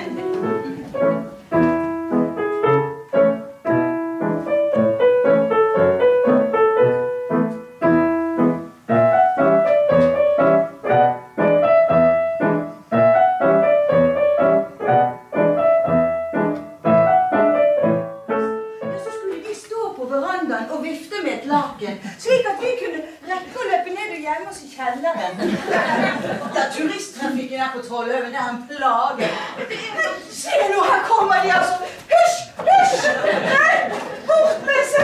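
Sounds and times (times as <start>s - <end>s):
grand piano piece: 0.0s - 20.5s.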